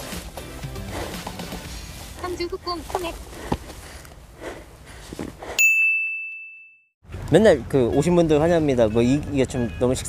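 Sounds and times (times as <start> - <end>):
outdoor background: 0.0 - 10.0.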